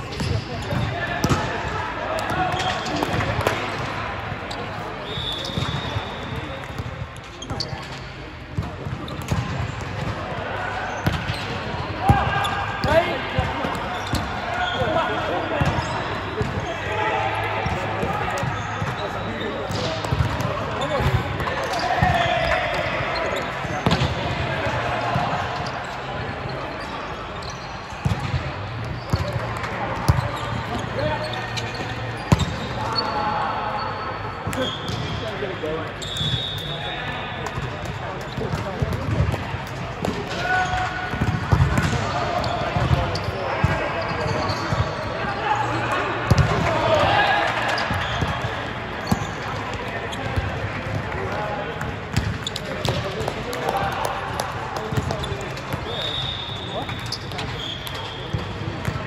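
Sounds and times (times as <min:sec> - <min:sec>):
volleyballs being hit and bouncing: 0:00.0 - 0:33.4, 0:34.2 - 0:45.2, 0:45.9 - 0:59.0
players calling out: 0:09.3 - 0:39.3.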